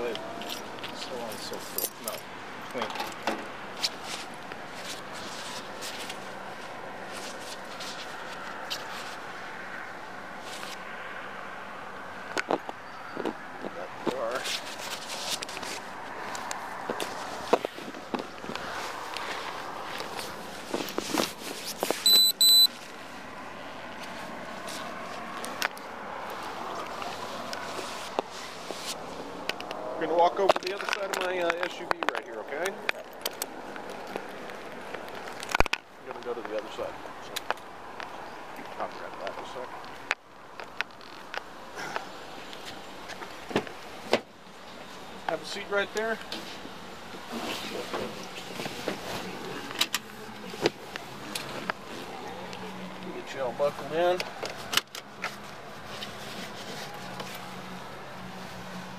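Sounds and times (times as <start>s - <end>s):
clothing rustle: 3.7s - 9.4s, 13.7s - 22.1s, 23.9s - 29.4s, 46.3s - 58.9s
short electronic beep: 22.0s - 22.7s.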